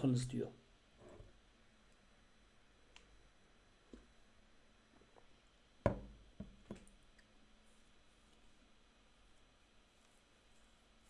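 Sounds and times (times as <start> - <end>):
sharp knocks: 5.9 - 6.5.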